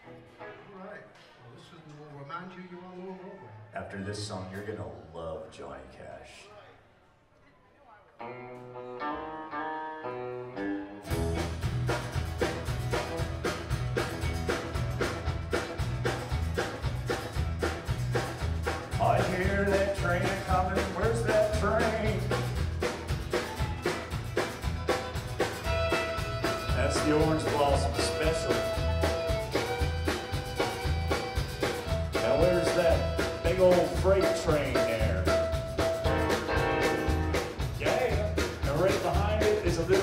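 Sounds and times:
live country band: 3.8 - 5.7, 8.2 - 40.0
fiddle sliding notes: 25.4 - 35.3.

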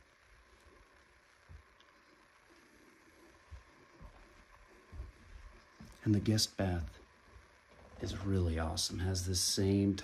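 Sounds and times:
soft footsteps: 0.3 - 6.1.

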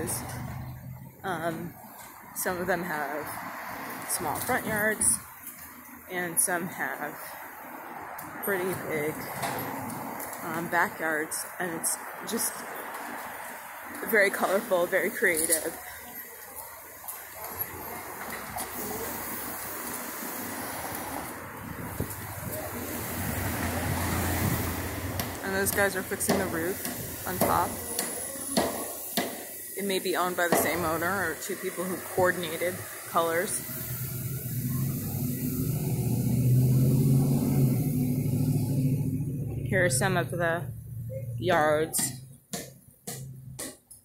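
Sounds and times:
vehicle approaching rumble: 0.0 - 29.8, 30.7 - 42.4
traffic hiss: 0.0 - 42.3.

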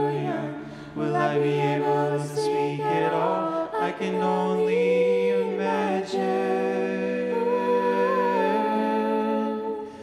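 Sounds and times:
women singing in close harmony: 0.0 - 10.0.

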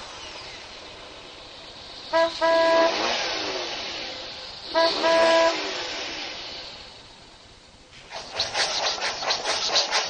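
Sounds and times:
hiss: 0.0 - 10.0.

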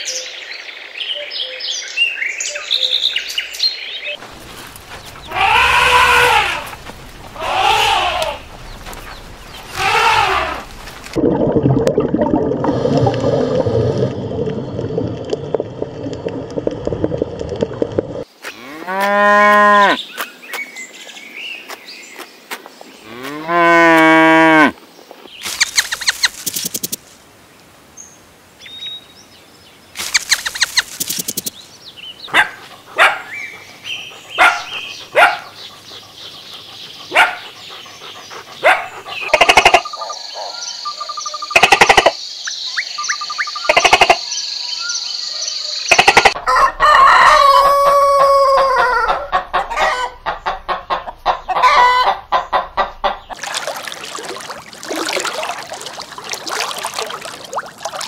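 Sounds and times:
rooster crowing: 5.3 - 6.7, 46.4 - 50.2, 51.6 - 52.2
cow mooing: 18.6 - 20.0, 23.1 - 24.7
short animal calls and clicks: 30.0 - 31.5.

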